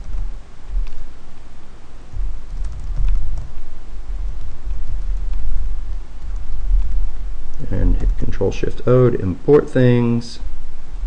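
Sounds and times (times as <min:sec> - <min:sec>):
low rumble: 0:00.0 - 0:09.5.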